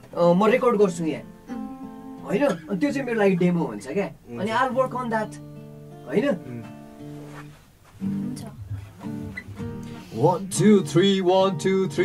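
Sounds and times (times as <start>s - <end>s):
acoustic guitar strummed: 0.5s - 3.8s, 4.5s - 12.0s.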